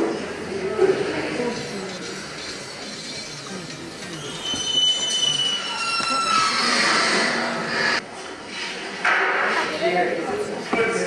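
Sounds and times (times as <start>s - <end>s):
high-pitched gliding squeal: 1.9s - 8.0s.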